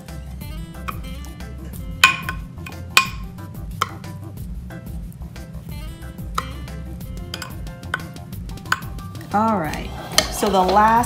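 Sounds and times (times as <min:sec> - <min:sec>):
metal spoon clinking on glass dish: 0:02.0 - 0:03.2, 0:07.3 - 0:08.1, 0:08.7 - 0:09.0.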